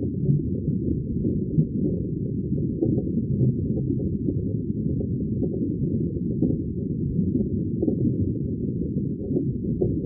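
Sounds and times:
muffled underwater rumble: 0.0s - 10.0s.

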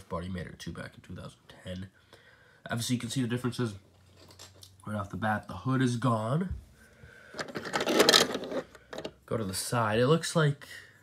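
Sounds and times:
plastic turntable scraping rattle: 7.4s - 9.2s.

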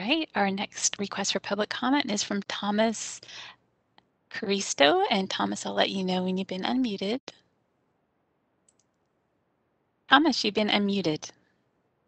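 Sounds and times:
faint clicks: 8.6s - 9.2s.

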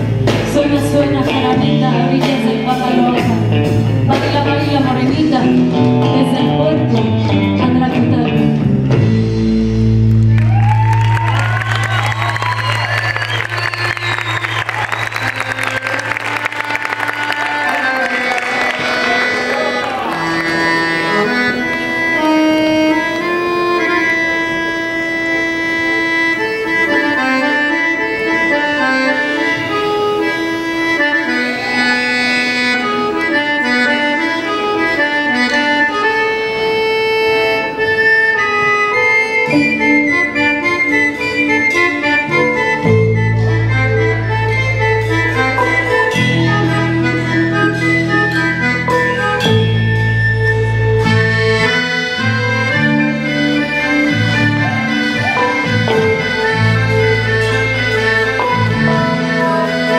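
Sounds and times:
drums: 0.0s - 17.1s
accordion melody: 0.0s - 59.9s
bass guitar: 0.0s - 59.9s.

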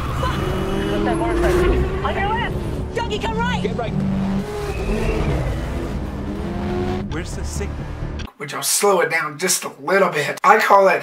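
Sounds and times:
car engine running hard: 0.0s - 8.2s.

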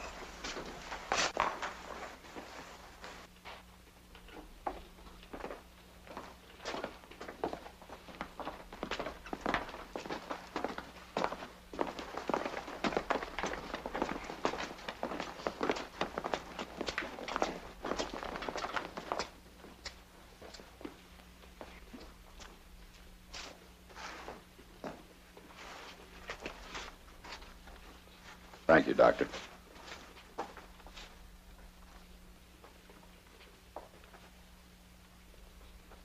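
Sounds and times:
footsteps: 0.0s - 34.5s
faint steady hum: 0.0s - 36.0s.

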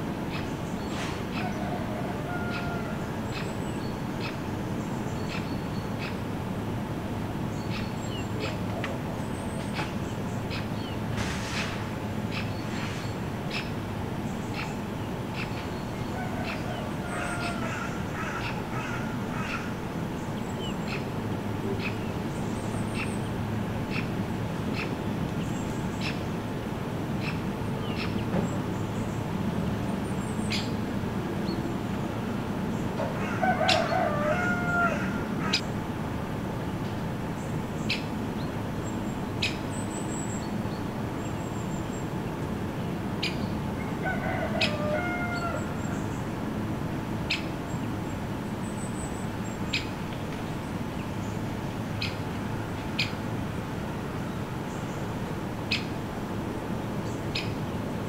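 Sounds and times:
bird calling: 0.3s - 4.4s, 13.5s - 26.3s, 32.7s - 35.7s.

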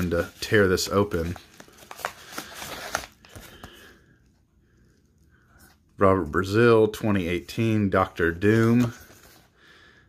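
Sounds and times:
paper mailer rustling: 0.0s - 3.8s, 7.4s - 9.5s.

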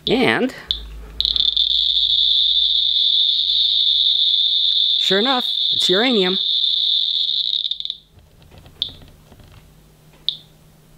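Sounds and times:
geiger counter chirp: 0.7s - 8.1s.

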